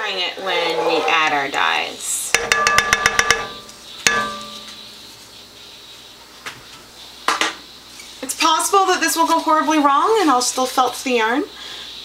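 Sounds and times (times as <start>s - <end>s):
metallic clink against cookpot: 2.3s - 4.8s.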